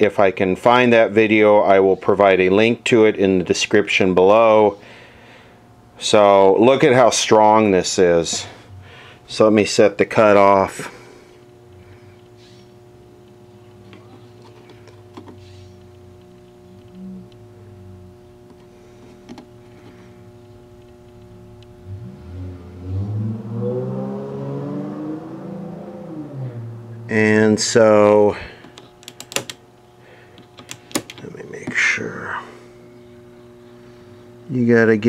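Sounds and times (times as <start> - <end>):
steady electrical hum: 0.0 - 35.0
pitched tone sliding up and down: 21.9 - 27.4.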